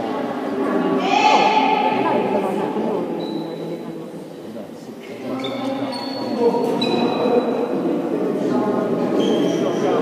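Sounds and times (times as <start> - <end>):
young voices chattering: 0.0 - 10.0.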